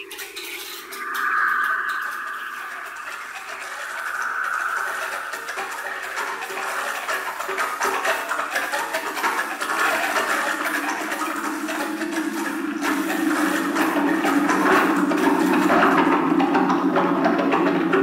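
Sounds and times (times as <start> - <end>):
low band of sound: 0.0 - 8.5
dense noise texture: 0.0 - 16.7.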